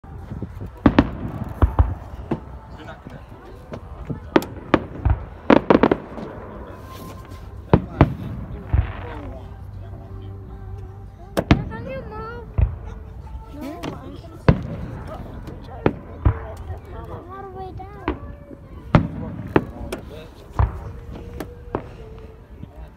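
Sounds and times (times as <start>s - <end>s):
voices talking: 0.0s - 22.9s
fireworks bangs: 0.4s - 9.7s, 11.4s - 17.2s, 18.0s - 22.3s
small firework pops: 0.7s - 2.6s, 3.7s - 6.3s, 18.9s - 22.0s.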